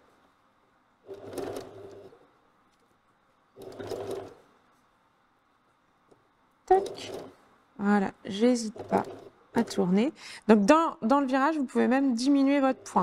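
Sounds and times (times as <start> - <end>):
sewing machine stitching: 1.0 - 2.2, 3.6 - 4.5, 6.7 - 7.4, 8.3 - 10.0, 12.1 - 13.0.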